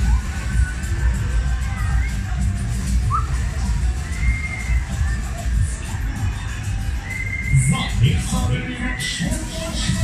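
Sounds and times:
loud ride music with heavy bass: 0.0s - 10.0s.

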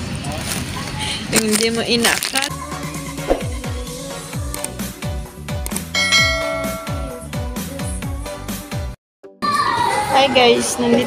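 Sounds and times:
bright bell chime: 6.0s - 7.3s.

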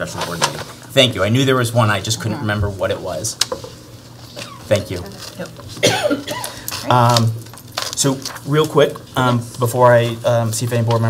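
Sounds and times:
person coughing: 5.8s - 6.7s.

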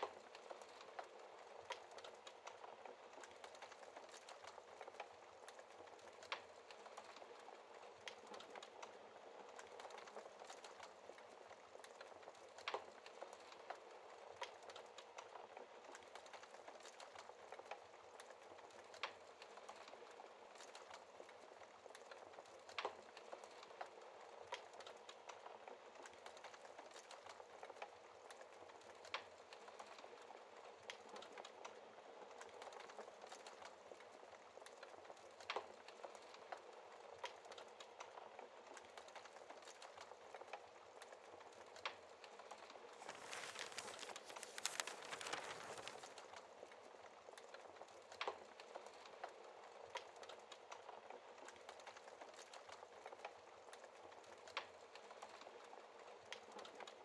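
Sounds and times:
wood fire crackling: 0.0s - 57.0s.

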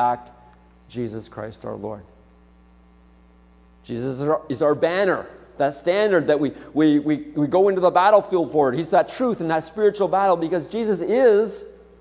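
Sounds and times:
man speaking: 0.0s - 2.2s, 3.8s - 11.9s
electrical mains hum: 0.0s - 12.0s.

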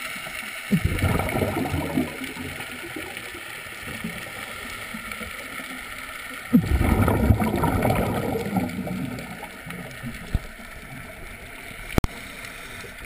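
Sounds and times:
regulator bubbles gurgling underwater: 0.0s - 13.0s
steady underwater hiss: 0.0s - 13.0s.

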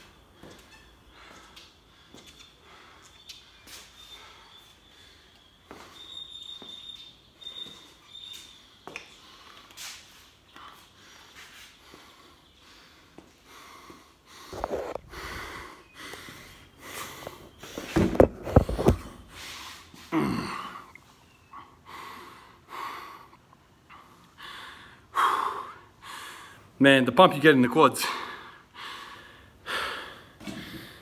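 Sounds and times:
man panting: 10.6s - 17.6s, 21.5s - 26.8s, 28.0s - 31.0s.

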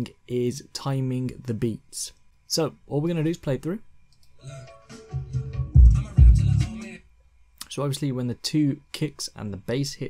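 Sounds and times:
hip-hop track: 4.4s - 7.0s
heavy kick drum and bass hits: 5.2s - 6.8s.

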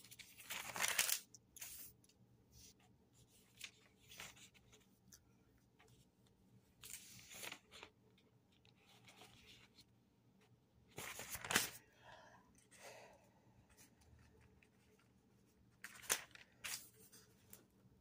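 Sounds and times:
thin pages rustling: 0.0s - 1.9s, 3.2s - 4.9s, 6.8s - 9.9s, 10.9s - 11.8s, 15.8s - 17.6s.

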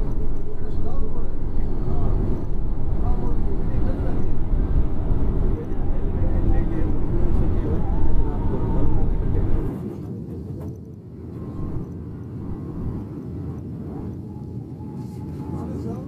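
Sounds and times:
faint indistinct voices: 0.0s - 12.9s, 13.9s - 16.0s
bus engine rumble and road noise: 0.0s - 13.1s.

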